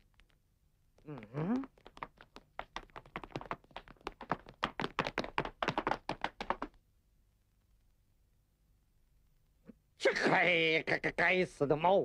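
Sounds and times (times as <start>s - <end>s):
cartoon running footsteps: 1.0s - 6.8s.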